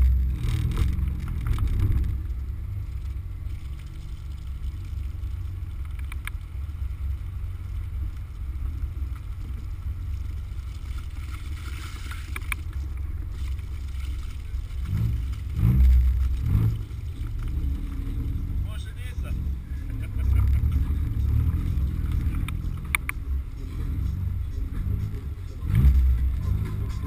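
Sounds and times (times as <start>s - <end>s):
car engine revving: 0.0s - 27.0s.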